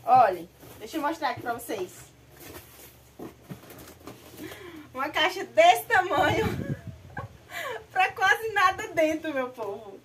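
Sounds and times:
cardboard box handled: 0:00.2 - 0:04.6
packing paper rustling: 0:00.4 - 0:04.6.

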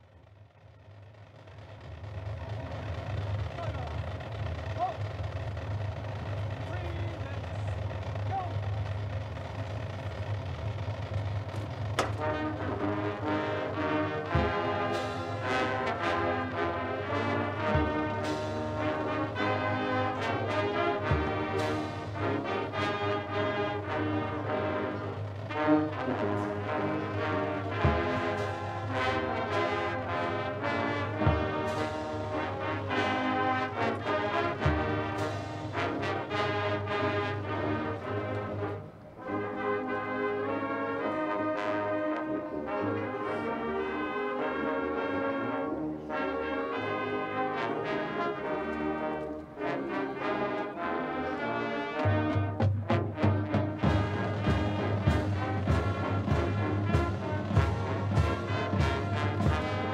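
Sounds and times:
brass band playing chords: 0:00.0 - 0:59.9.

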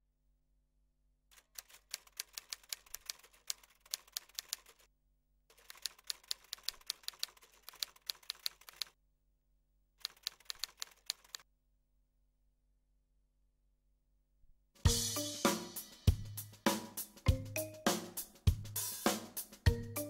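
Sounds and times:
typewriter keys clacking: 0:01.3 - 0:04.9, 0:05.5 - 0:09.0, 0:10.0 - 0:11.4.

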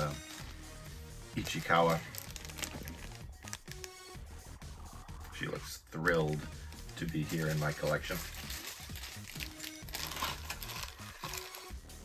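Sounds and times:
background music: 0:00.0 - 0:12.0
plastic bag crinkling: 0:01.4 - 0:04.1, 0:07.0 - 0:11.8.

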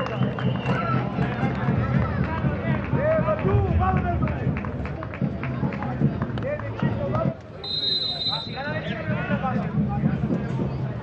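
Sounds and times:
referee's whistle blast: 0:07.6 - 0:08.9.

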